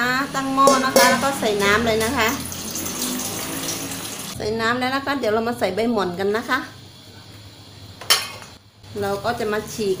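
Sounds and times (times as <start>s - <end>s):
water pouring into metal pot: 0.6s - 4.4s.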